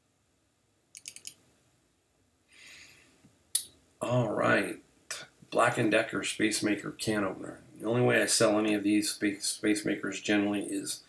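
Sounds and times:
sharp computer clicks: 0:01.0 - 0:01.4
person speaking: 0:04.0 - 0:11.0.

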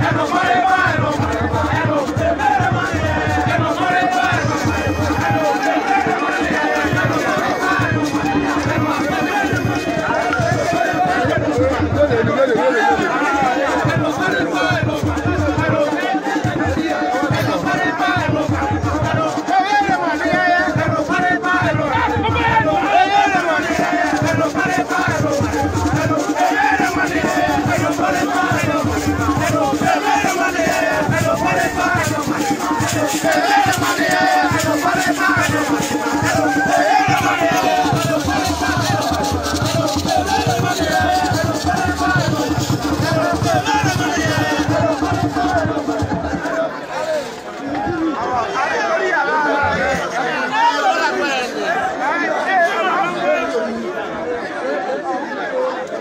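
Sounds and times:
drum beats: 0:00.0 - 0:48.9
crowd singing and chanting: 0:00.0 - 0:56.0.

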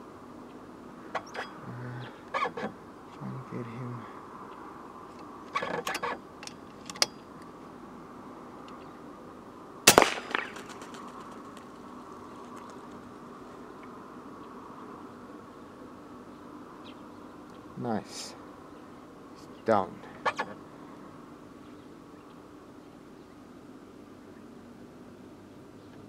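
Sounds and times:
air rifle shot: 0:09.9 - 0:11.0.

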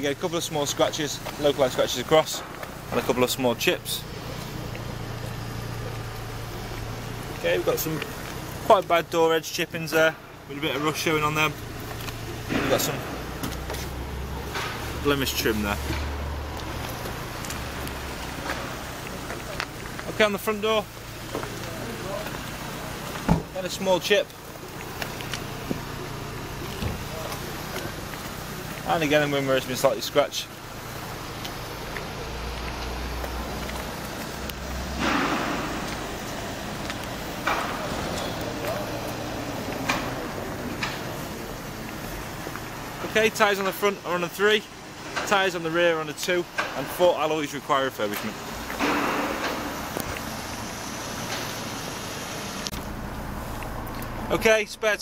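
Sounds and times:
even hiss: 0:00.0 - 0:54.9.

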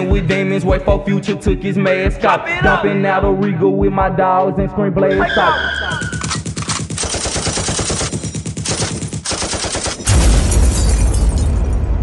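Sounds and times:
rapid automatic gunfire: 0:06.1 - 0:10.2.

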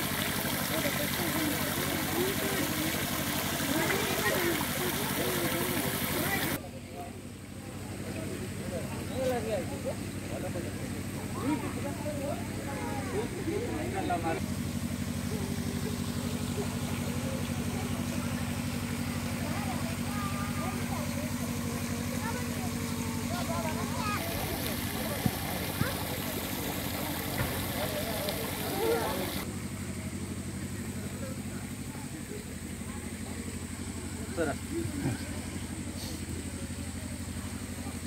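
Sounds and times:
water fountain spray hissing: 0:00.0 - 0:06.6, 0:07.8 - 0:29.5, 0:30.2 - 0:38.0
faint voices: 0:00.0 - 0:38.0
low engine hum: 0:00.0 - 0:38.0.

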